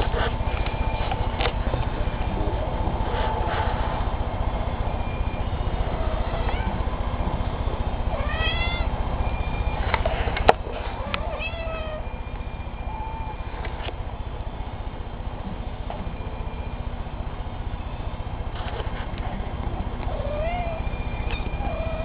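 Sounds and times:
steady low rumble: 0.0 - 22.0
kittens meowing: 5.9 - 6.9, 8.1 - 8.9, 10.9 - 12.1, 20.0 - 22.0.

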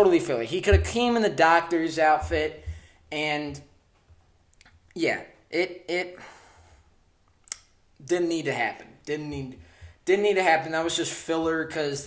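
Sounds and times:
sharp click: 7.4 - 7.7.

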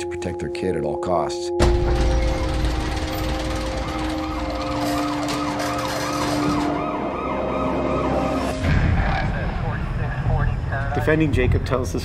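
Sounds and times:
siren wailing up and down: 3.7 - 10.7
low boom: 8.6 - 10.8.

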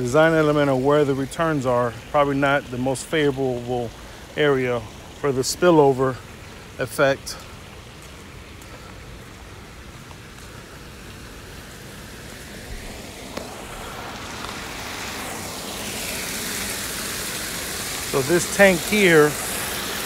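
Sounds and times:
water spilling and splashing: 0.0 - 20.0.

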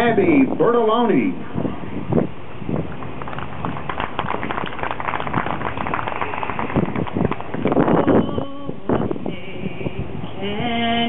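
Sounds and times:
crowd applauding: 2.9 - 8.0.

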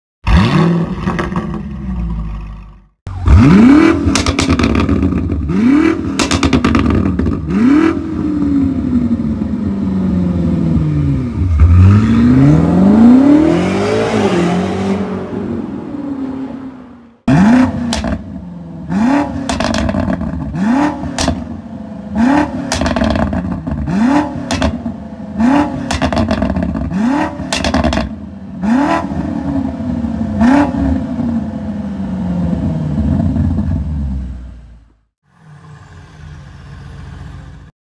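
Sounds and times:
car engine revving: 3.1 - 34.5
exhaust pops and crackles: 4.1 - 5.4, 22.7 - 23.9, 25.8 - 26.9.

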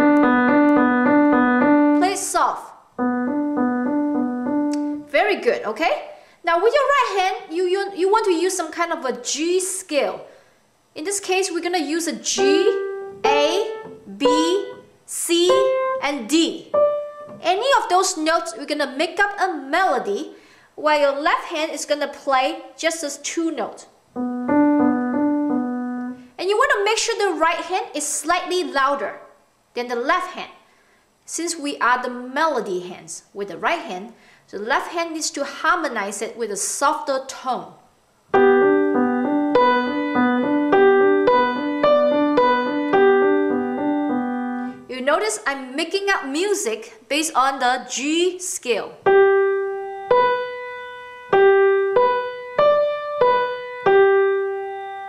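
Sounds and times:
grand piano melody: 0.0 - 5.2, 12.3 - 18.2, 24.1 - 26.3, 38.3 - 44.9, 49.0 - 55.0
woman speaking: 2.0 - 2.8, 5.1 - 10.3, 11.0 - 16.8, 17.4 - 23.9, 26.4 - 30.6, 31.3 - 37.8, 44.8 - 49.0.

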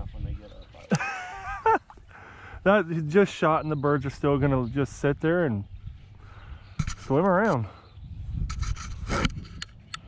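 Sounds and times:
grass brushing microphone: 2.7 - 10.0.

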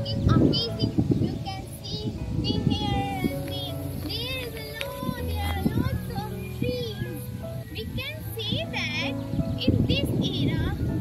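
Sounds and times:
girl singing with music: 0.0 - 11.0.

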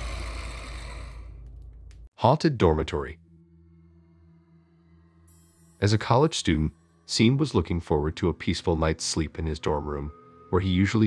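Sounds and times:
deep rumble: 0.0 - 2.1.

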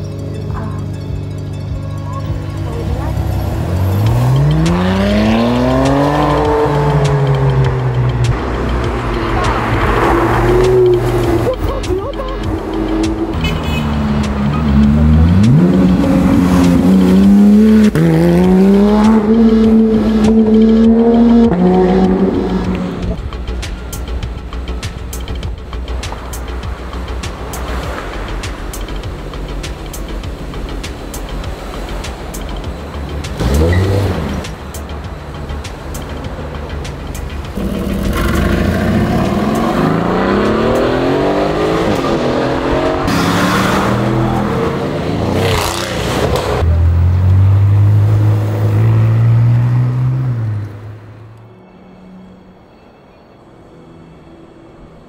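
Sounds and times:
car engine revving: 0.0 - 51.4
background music: 0.0 - 55.0
street traffic: 0.0 - 55.0.

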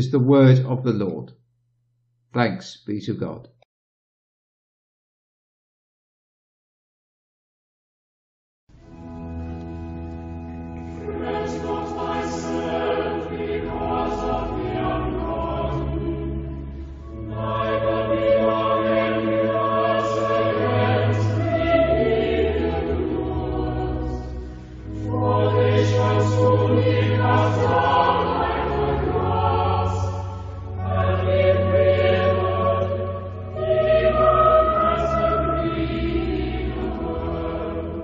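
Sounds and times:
choir singing a chant: 11.0 - 38.0.

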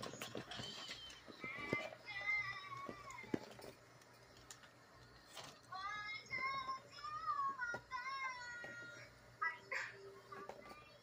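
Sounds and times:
child singing through speaker: 1.3 - 3.4, 5.7 - 11.0.

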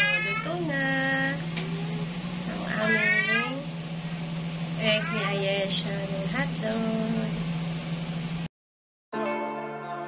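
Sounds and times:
steady low hum: 0.0 - 8.5.

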